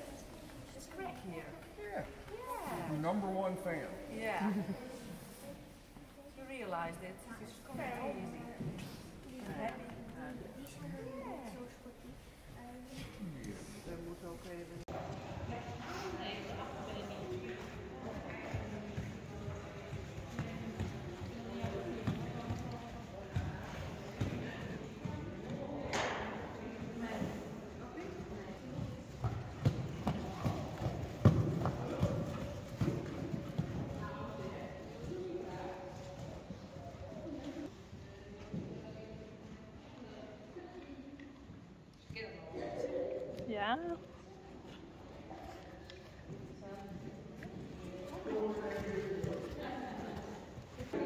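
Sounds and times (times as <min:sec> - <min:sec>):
horse hoofbeats on sand: 0:14.9 - 0:37.2.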